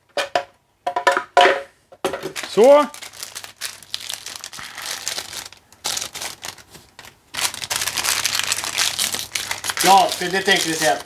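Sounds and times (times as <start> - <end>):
plastic wrapper crinkling: 2.3 - 11.0.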